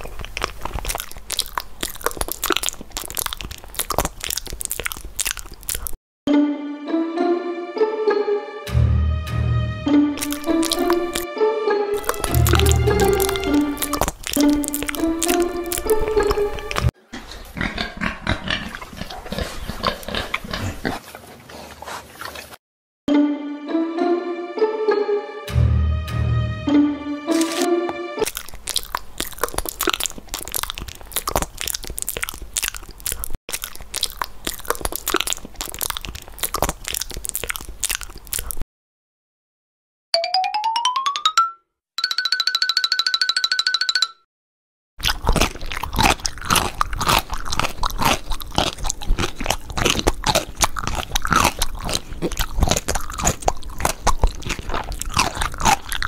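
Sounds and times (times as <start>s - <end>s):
background music: 6.3s - 16.9s, 23.1s - 28.4s
cartoon trill of pitched notes: 8.7s - 16.9s
pig grunts and snuffles: 14.9s - 22.6s.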